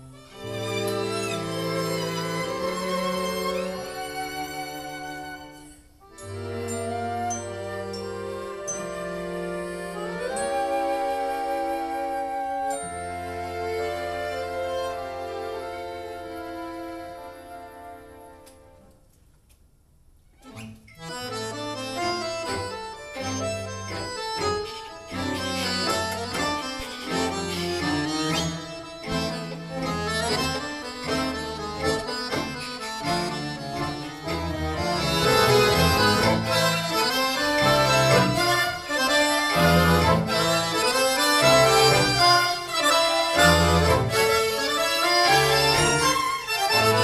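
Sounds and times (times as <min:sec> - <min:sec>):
solo button accordion: 0:00.0 - 0:12.1, 0:12.7 - 0:18.8, 0:20.5 - 0:47.0
accordion ensemble with strings: 0:00.0 - 0:19.0, 0:20.4 - 0:47.0.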